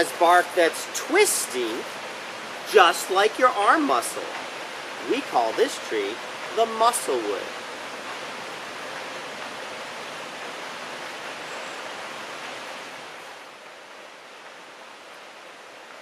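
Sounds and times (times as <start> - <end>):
steady rushing hiss: 0.0 - 16.0.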